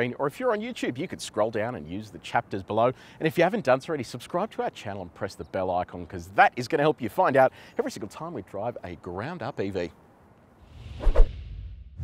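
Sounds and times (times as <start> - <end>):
whoosh: 10.6 - 12.0.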